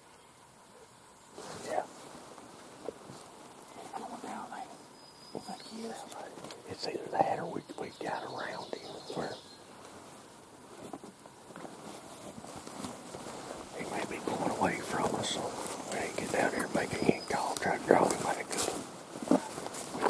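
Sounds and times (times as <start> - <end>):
people whispering: 1.4 - 1.9, 3.6 - 9.5, 13.7 - 20.0.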